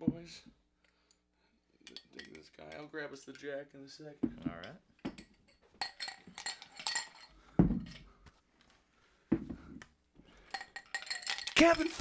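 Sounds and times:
ice clinking in glass: 0:10.5 - 0:12.0.

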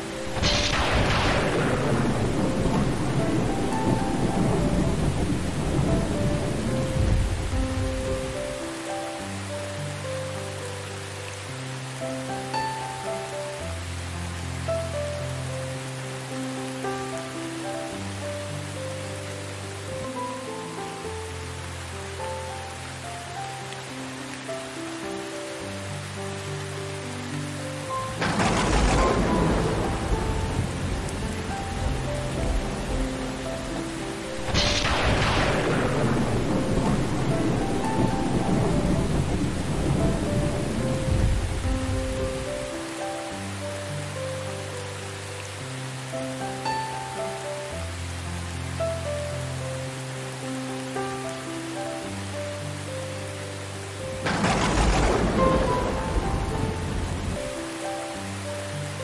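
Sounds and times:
slow soft piano music: 0:00.0 - 0:59.0
steady rain: 0:00.0 - 0:59.0
thunderclaps: 0:00.3 - 0:08.4, 0:28.1 - 0:33.1, 0:34.4 - 0:42.5, 0:54.2 - 0:57.5.

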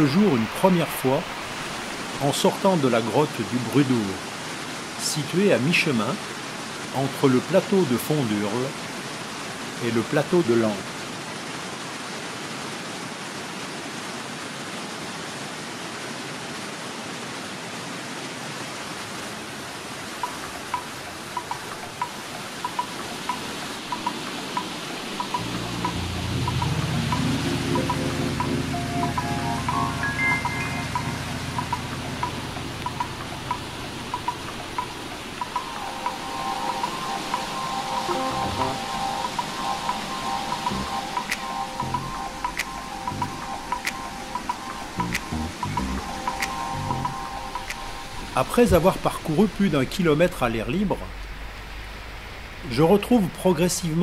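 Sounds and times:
stream rushing over rocks: 0:00.0 - 0:54.0
repeated high music notes: 0:25.2 - 0:48.5
sustained low chords: 0:25.4 - 0:34.2, 0:38.1 - 0:39.0, 0:40.6 - 0:48.4.

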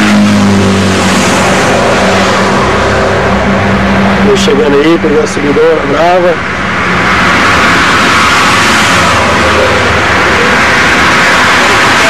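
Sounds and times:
low vehicle hum: 0:00.0 - 0:12.0
road traffic: 0:00.0 - 0:12.0.

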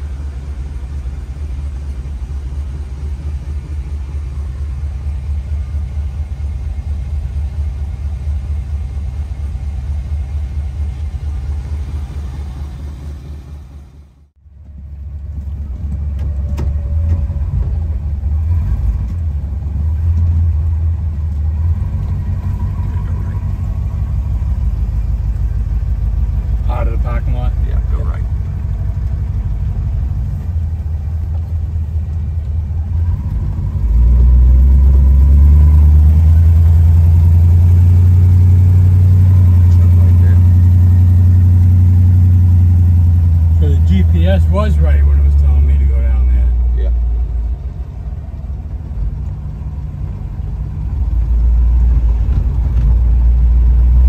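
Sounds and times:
car engine rumble from inside: 0:00.0 - 0:54.0.

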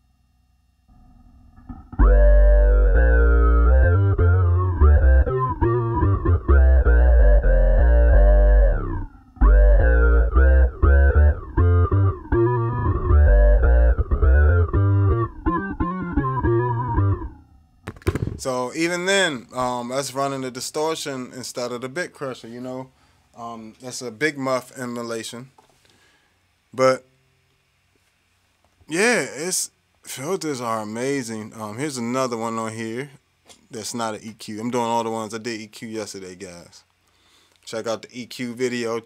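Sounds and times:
distorted electric bass riff: 0:00.8 - 0:19.4.

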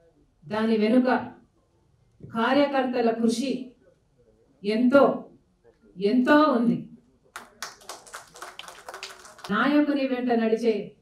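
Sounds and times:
audience clapping: 0:07.4 - 0:09.6.

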